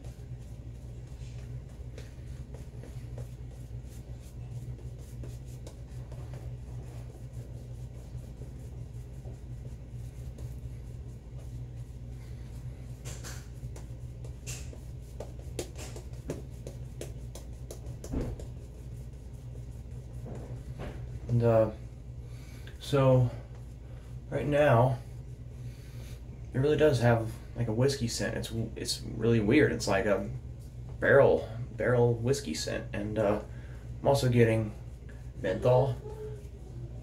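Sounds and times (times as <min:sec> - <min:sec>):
shaving brush on lathered skin: 0:00.0 - 0:21.8
steady low hum: 0:00.0 - 0:37.0.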